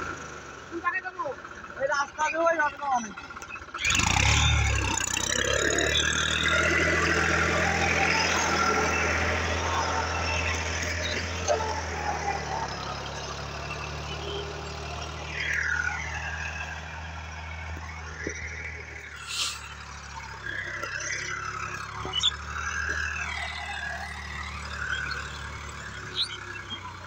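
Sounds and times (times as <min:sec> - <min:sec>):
tractor diesel engine under load: 0:00.0 - 0:27.0
rotary tiller through soil: 0:02.0 - 0:27.0.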